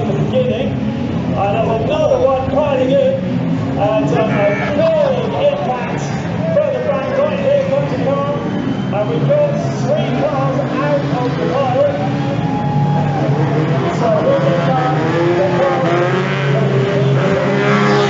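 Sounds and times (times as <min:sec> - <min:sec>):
racing car engines revving: 0:00.0 - 0:18.0
car passing close: 0:02.6 - 0:18.0.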